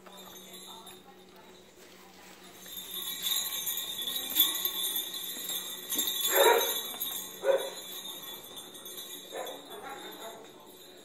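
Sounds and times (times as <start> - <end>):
jingle bells on dog collar: 0.0 - 11.0.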